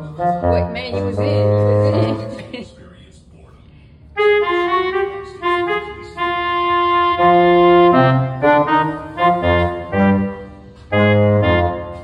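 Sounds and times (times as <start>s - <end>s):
melody of held notes: 0.0s - 2.7s, 4.2s - 12.0s.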